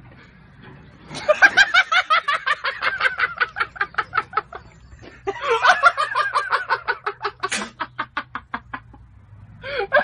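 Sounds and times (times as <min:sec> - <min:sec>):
person laughing hard: 0:01.2 - 0:08.9.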